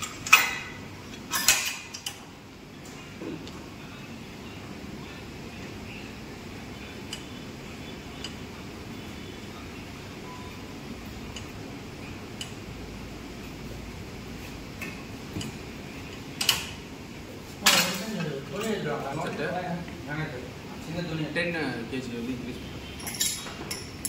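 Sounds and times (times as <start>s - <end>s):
steady background hum: 0.0s - 24.0s.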